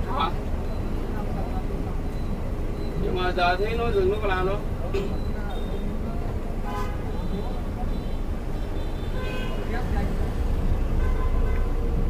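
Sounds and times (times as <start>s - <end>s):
bus engine drone: 0.0s - 12.0s
road rumble: 0.0s - 12.0s.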